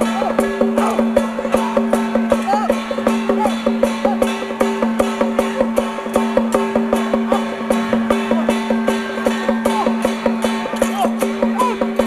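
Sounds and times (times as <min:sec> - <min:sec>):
percussion band playing fast beat: 0:00.0 - 0:12.0.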